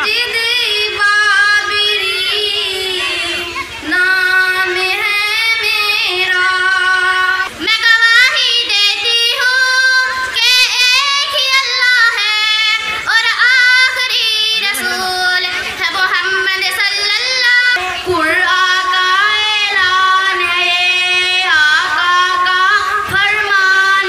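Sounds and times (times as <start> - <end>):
girl singing into a microphone: 0.0 - 24.0.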